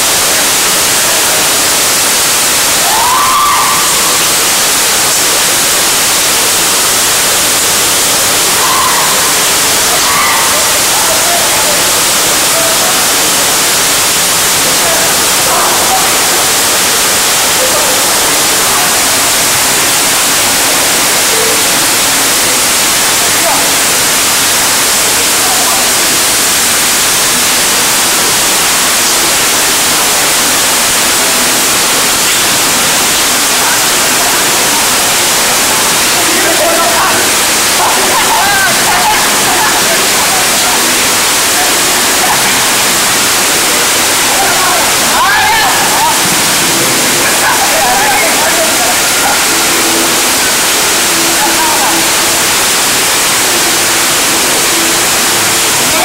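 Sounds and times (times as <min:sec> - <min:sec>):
heavy rain hissing: 0:00.0 - 0:56.0
distant voices shouting: 0:02.7 - 0:04.7, 0:08.2 - 0:21.8, 0:33.5 - 0:56.0.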